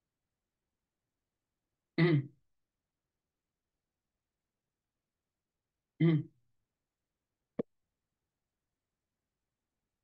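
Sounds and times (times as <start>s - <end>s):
man clearing his throat: 2.0s - 2.4s, 6.0s - 6.3s.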